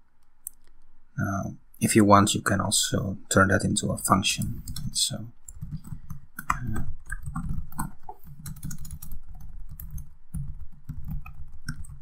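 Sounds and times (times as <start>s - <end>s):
typing on computer keyboard: 4.4s - 12.0s.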